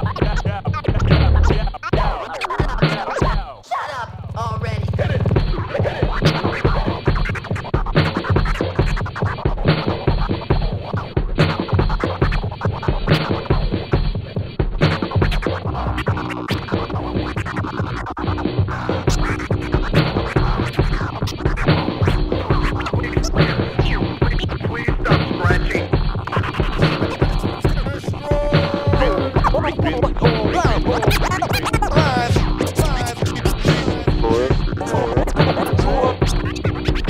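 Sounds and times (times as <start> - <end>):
deep bass: 0.0 - 1.8, 4.0 - 5.6, 18.2 - 37.0
looped drum beat: 0.0 - 37.0
turntable scratching: 0.0 - 37.0.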